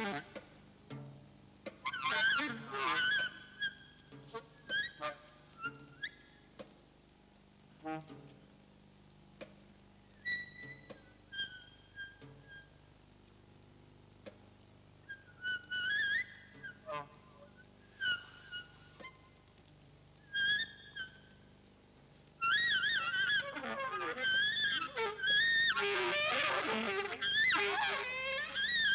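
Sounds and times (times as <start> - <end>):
saxophone playing free jazz: 1.8 - 3.4, 22.4 - 28.9.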